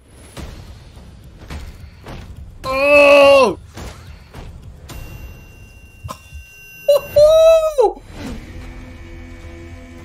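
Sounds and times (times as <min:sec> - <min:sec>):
loud high-pitched yell: 0:06.9 - 0:08.0
short cry: 0:06.9 - 0:08.0.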